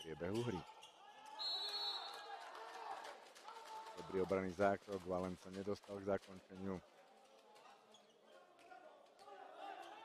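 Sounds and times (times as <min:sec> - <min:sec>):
referee's whistle blast: 0:01.4 - 0:02.1.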